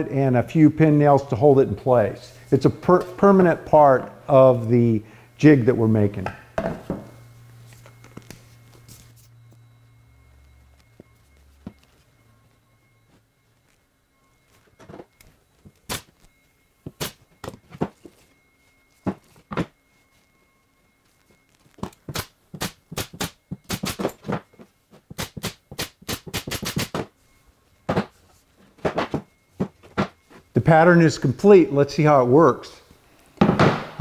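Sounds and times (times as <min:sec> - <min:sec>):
pneumatic nailer clicks: 0:22.1 - 0:24.1, 0:25.2 - 0:27.0.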